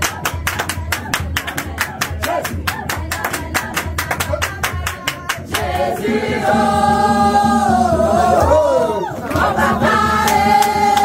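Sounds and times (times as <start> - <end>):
rhythmic hand-clapping: 0.0 - 11.0
women singing together: 0.0 - 11.0.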